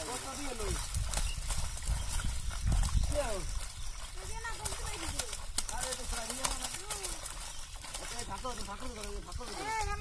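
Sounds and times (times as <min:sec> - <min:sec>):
fish slapping and splashing: 0:00.0 - 0:10.0.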